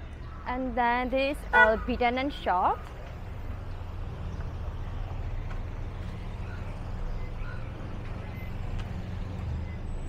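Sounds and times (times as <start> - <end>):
low rumble of motor traffic: 0.0 - 10.0.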